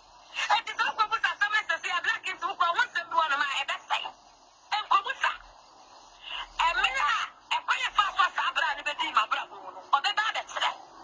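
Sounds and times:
person speaking over telephone: 0:06.6 - 0:10.8.

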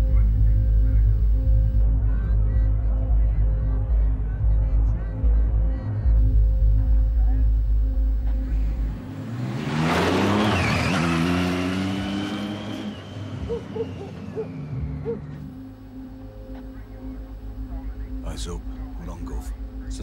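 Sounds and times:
deep pulsing music beat: 0:00.0 - 0:09.2, 0:13.4 - 0:20.0
car engine revving past: 0:08.3 - 0:15.3.

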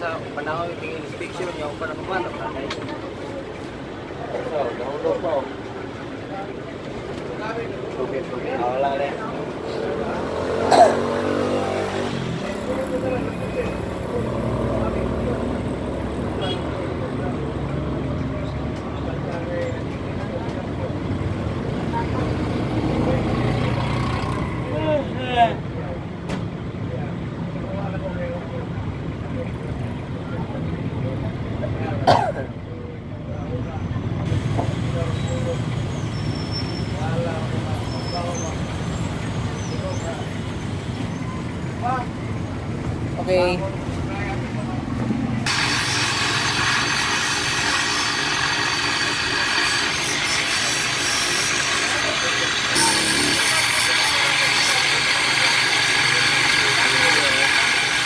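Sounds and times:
street traffic: 0:00.0 - 0:58.0
motorcycles passing: 0:07.4 - 0:19.4, 0:20.2 - 0:26.0, 0:37.0 - 0:58.0
grinding wheel grinding metal part: 0:45.5 - 0:58.0.

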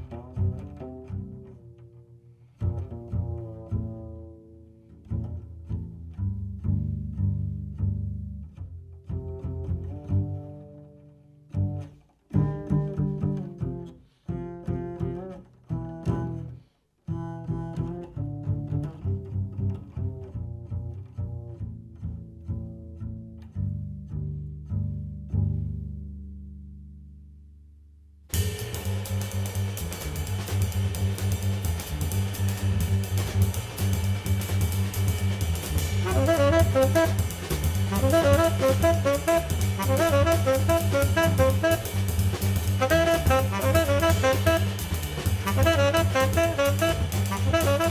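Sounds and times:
plucked double bass: 0:00.0 - 0:47.9
drums with cymbals: 0:28.3 - 0:47.9
saxophone melody: 0:36.0 - 0:47.9.

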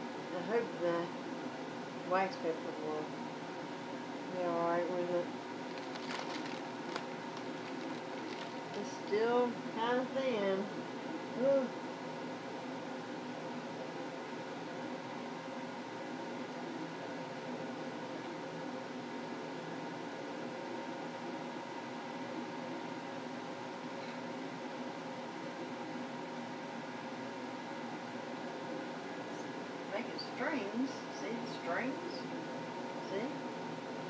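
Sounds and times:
machine hum and hiss: 0:00.0 - 0:34.0.

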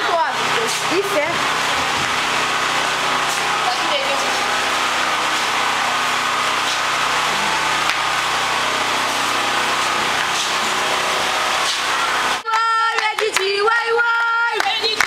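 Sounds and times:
small motor droning: 0:00.4 - 0:12.4.

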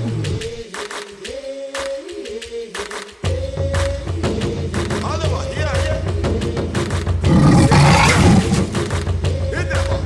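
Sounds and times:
background music with steady beat: 0:00.0 - 0:10.0
leopard growling: 0:07.3 - 0:09.0.

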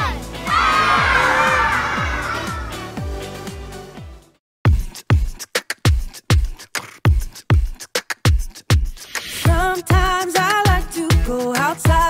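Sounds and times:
children shouting together: 0:00.0 - 0:03.0
children's song with drum beat: 0:04.7 - 0:12.0.

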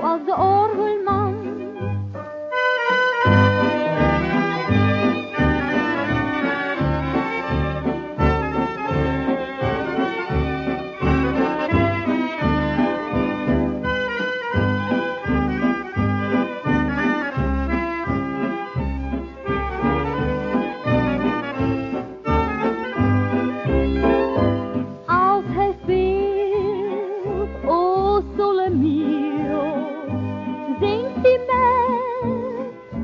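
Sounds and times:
dance orchestra playing foxtrot: 0:02.1 - 0:33.0.

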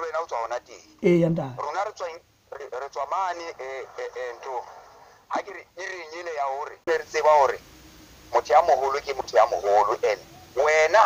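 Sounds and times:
person talking: 0:01.0 - 0:01.7.

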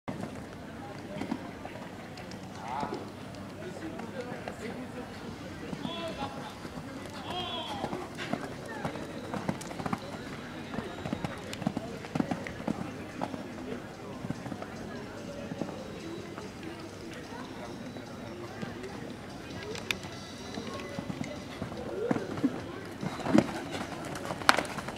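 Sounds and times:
people talking: 0:00.1 - 0:24.9.

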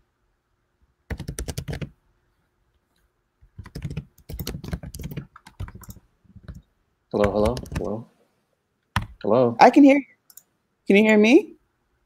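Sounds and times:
typing on keyboard: 0:01.1 - 0:01.9, 0:03.6 - 0:06.6, 0:07.2 - 0:08.0, 0:09.0 - 0:09.2.

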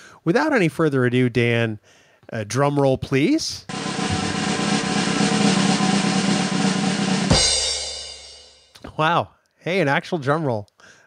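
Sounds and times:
snare drum roll: 0:03.7 - 0:08.4
cymbal crash ringing: 0:03.7 - 0:08.7.

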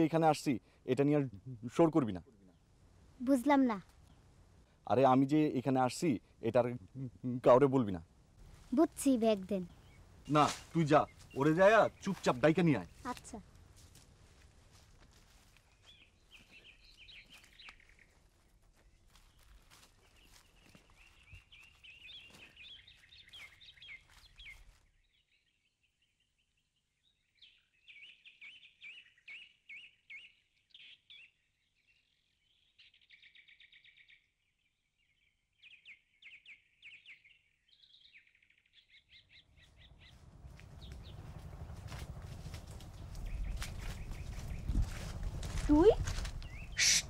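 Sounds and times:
small birds chirping: 0:08.6 - 0:14.0, 0:14.7 - 0:47.0.

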